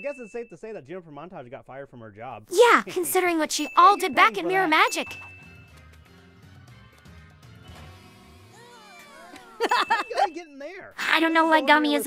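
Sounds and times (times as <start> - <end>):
soft cartoon music: 2.9 - 12.0.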